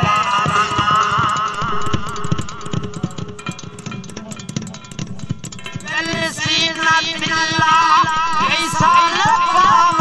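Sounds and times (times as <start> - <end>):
man singing folk song: 0.0 - 2.0, 5.8 - 10.0
held instrumental note: 0.0 - 10.0
steady drumbeat: 0.0 - 10.0.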